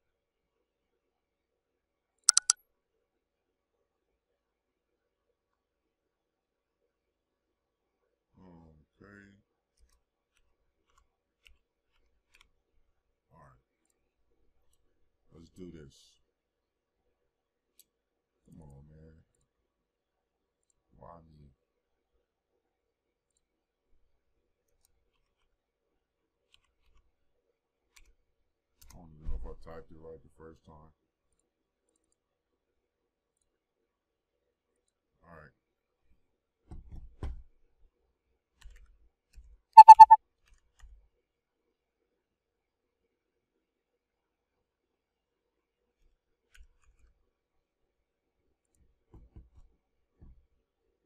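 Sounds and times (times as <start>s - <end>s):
computer mouse clicks: 2.3s - 2.6s, 39.8s - 40.2s
short loud beeps: 2.3s - 2.6s, 39.8s - 40.2s.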